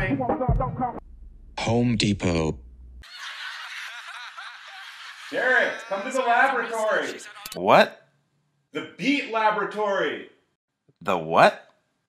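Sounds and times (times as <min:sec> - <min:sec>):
quiet snickering laughter: 0:03.1 - 0:07.6
faint voices: 0:05.3 - 0:07.6.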